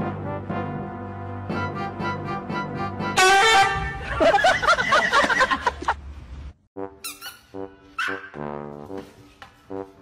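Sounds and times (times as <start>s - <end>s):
honking horn tone: 3.1s - 4.1s
person laughing: 3.9s - 6.0s.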